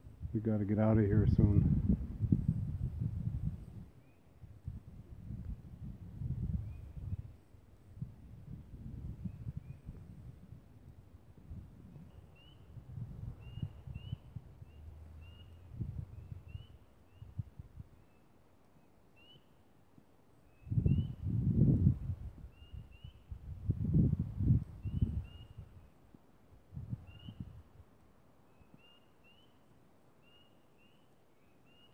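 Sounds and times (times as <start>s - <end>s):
low rumbling microphone noise: 0.0s - 17.9s, 20.7s - 25.8s.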